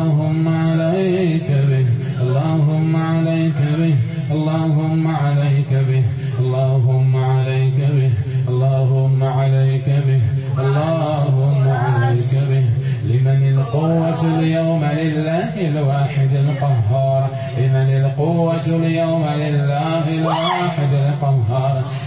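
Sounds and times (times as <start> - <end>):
man chanting religious recitation: 0.0 - 22.0.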